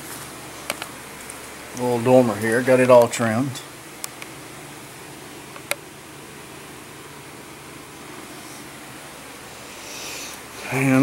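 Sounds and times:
low hiss with faint hum: 0.0s - 11.0s.

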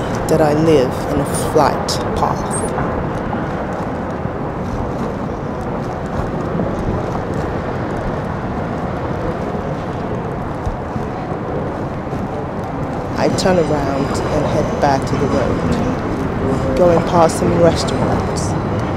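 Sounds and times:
aircraft passing overhead: 0.0s - 18.9s.

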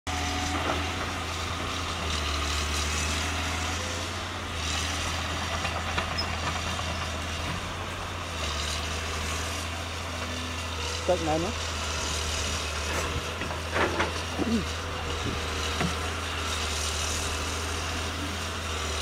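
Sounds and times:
excavator diesel engine running: 0.1s - 19.0s.

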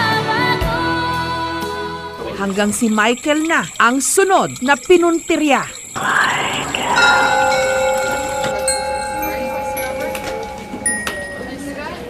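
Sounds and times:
higher chiming tones: 2.5s - 12.0s
bell-like metallic sting: 5.9s - 12.0s.

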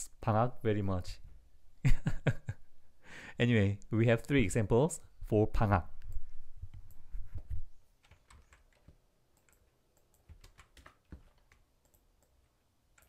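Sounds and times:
computer keyboard keystrokes: 8.0s - 12.4s.

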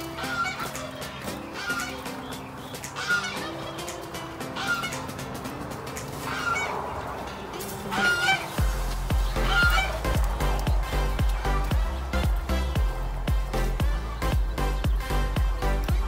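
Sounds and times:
held music notes: 0.0s - 16.0s
heavy bass beat: 8.6s - 16.0s.

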